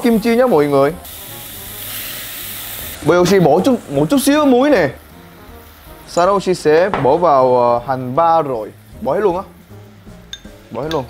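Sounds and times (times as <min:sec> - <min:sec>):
food sizzling in hot oil: 0:00.0 - 0:11.0.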